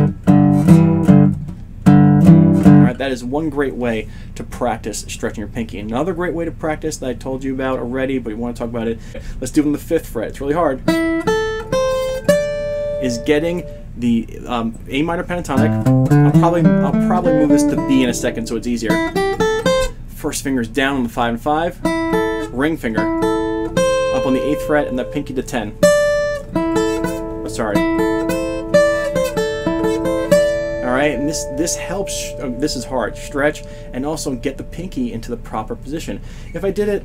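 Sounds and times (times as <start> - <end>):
acoustic guitar picked notes: 0.0 - 3.0, 10.8 - 14.4, 15.3 - 20.1, 21.5 - 36.6.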